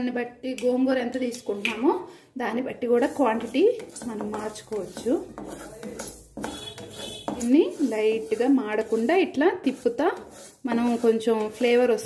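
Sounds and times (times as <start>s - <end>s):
wooden spatula scraping metal pan: 2.7s - 12.0s.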